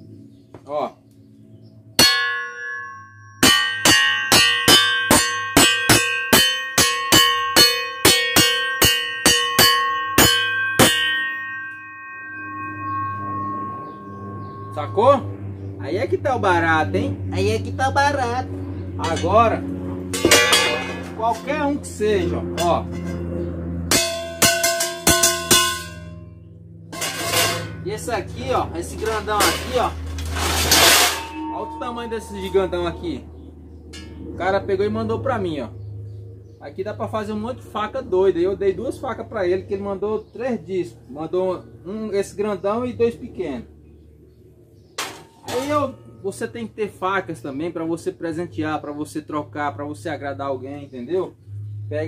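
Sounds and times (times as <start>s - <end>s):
long metallic ringing: 1.3s - 52.0s
hammer striking steel saw blade: 2.0s - 15.1s, 20.1s - 21.6s, 23.9s - 26.2s, 26.9s - 27.8s, 28.9s - 33.0s.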